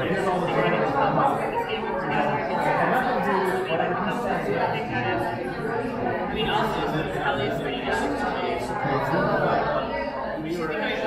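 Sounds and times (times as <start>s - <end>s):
hubbub of overlapping conversation: 0.0s - 11.0s.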